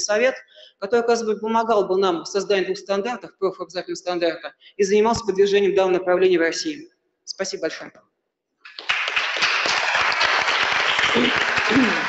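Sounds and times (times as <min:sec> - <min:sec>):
audience applauding: 0:08.7 - 0:12.0.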